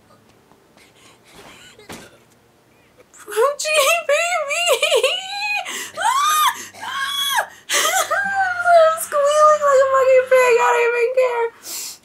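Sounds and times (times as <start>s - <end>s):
woman whimpering cries: 4.6s - 9.6s
breathy gasp: 5.7s - 6.0s.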